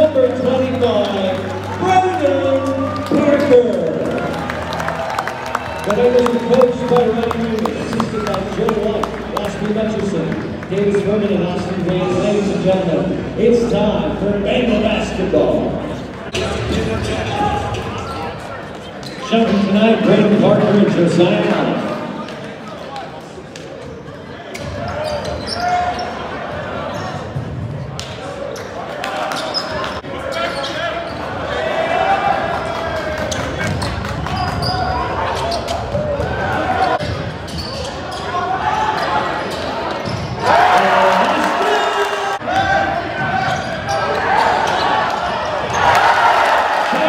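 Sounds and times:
crowd voices hubbub: 0.0 - 45.9
basketball bouncing on court: 33.6 - 35.0.

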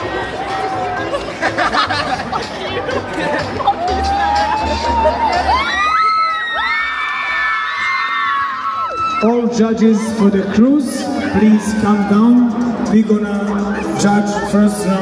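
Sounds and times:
crowd chattering and cheering: 0.0 - 15.0.

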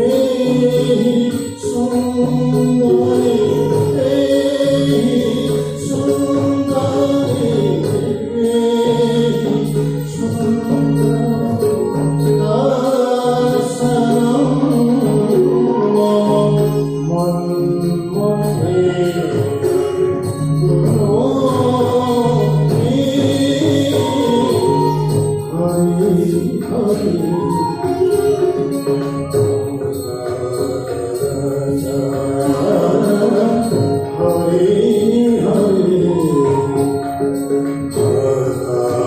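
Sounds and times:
instrumental accompaniment: 0.0 - 39.0
person singing devotional song: 37.9 - 39.0.

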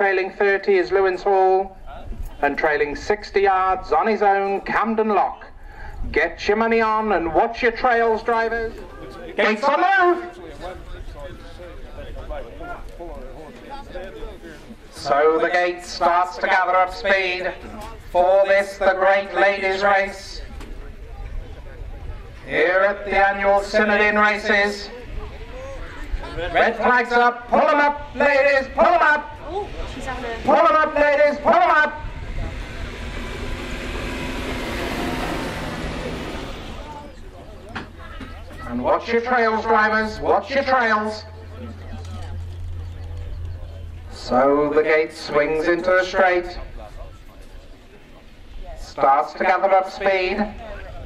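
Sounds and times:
public address commentary: 0.0 - 33.1, 36.4 - 51.0
voices talking: 6.2 - 51.0
steady low rumble: 13.8 - 38.0, 38.7 - 48.6
pickup truck driving past: 31.8 - 38.0.

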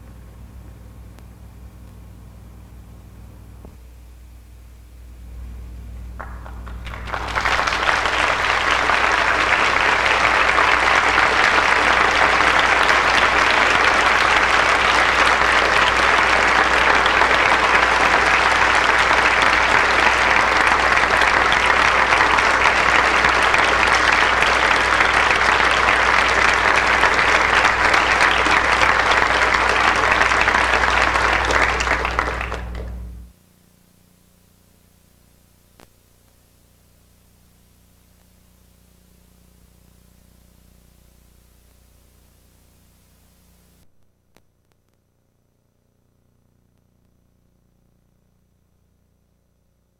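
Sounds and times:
steady low hum: 0.0 - 49.9
audience applauding: 6.2 - 33.3.

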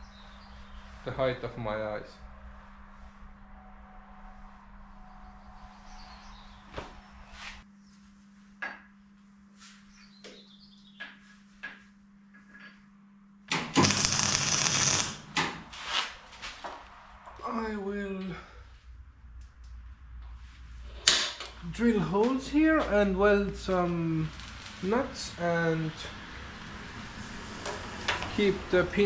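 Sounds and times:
low hum: 0.0 - 8.2, 12.2 - 27.7
welding crackling hiss: 13.5 - 16.1, 23.6 - 25.3.

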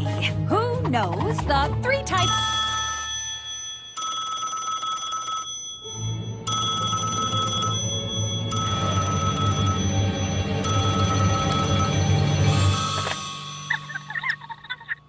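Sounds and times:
background music: 0.0 - 4.0, 5.7 - 15.0
cartoon telephone ringing: 2.2 - 15.0.

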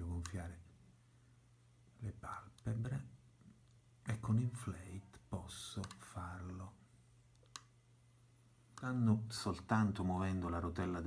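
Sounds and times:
low steady hum: 0.0 - 11.0
computer mouse click: 5.8 - 6.0, 7.3 - 7.7.

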